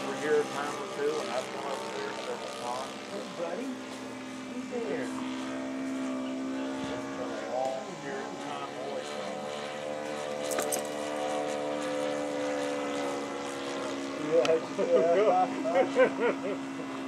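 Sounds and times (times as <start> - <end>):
model airplane engine in flight: 0.0 - 17.0.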